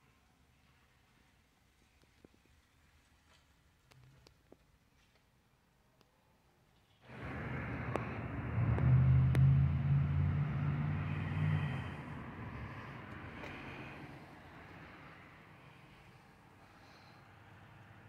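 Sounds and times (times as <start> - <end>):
vehicle engine rumble: 7.1 - 18.0.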